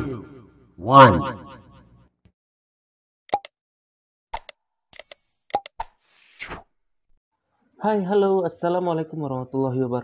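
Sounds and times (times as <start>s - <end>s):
quick clicks: 4.3s - 5.9s.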